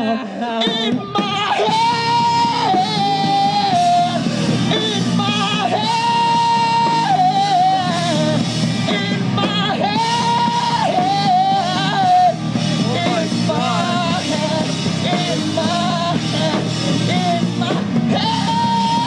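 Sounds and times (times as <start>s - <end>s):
rock band playing live: 0.0s - 19.0s.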